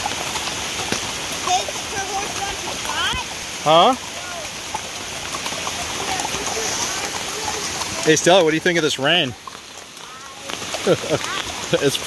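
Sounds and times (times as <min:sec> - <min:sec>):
rain on foliage: 0:00.0 - 0:12.0.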